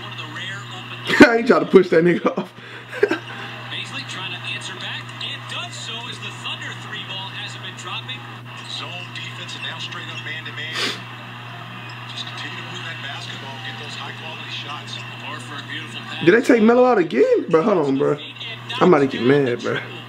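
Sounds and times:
tv sports commentator talking: 0:00.0 - 0:11.0, 0:12.0 - 0:20.0
steady low hum: 0:00.0 - 0:20.0.

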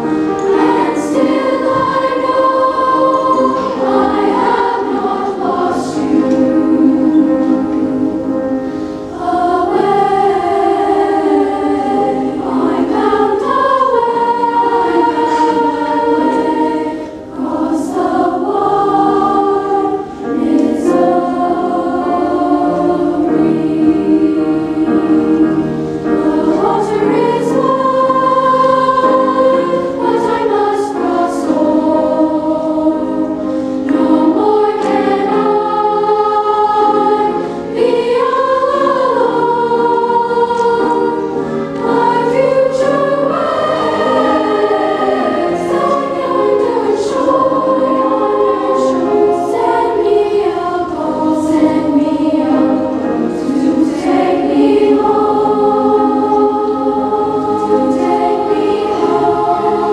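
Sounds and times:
girls choir singing: 0:00.0 - 0:59.9.

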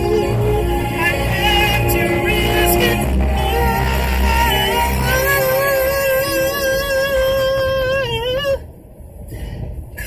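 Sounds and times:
man singing a high held note: 0:00.0 - 0:08.7.

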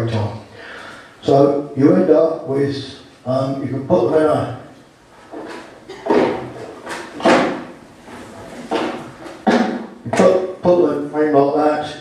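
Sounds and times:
man speaking in reverberant hall: 0:00.0 - 0:04.9, 0:09.7 - 0:12.0.

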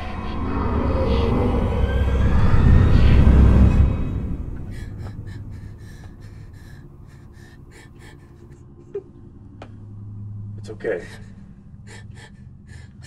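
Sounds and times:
low rumbling horror sound design: 0:00.0 - 0:13.0
quick shallow gasping breaths: 0:04.7 - 0:08.6.

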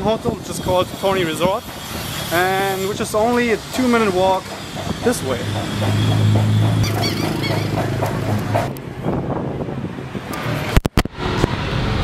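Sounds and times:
wind-like microphone noise: 0:00.0 - 0:02.3, 0:07.9 - 0:12.0
passing cars and motorbikes: 0:00.3 - 0:12.0.

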